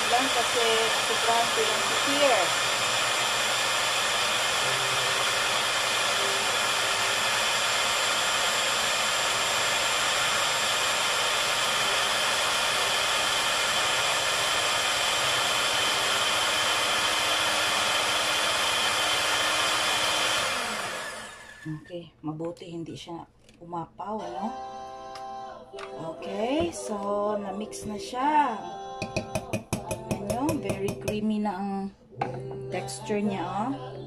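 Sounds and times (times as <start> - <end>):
electric hand mixer whining: 0.0 - 21.9, 29.0 - 31.2.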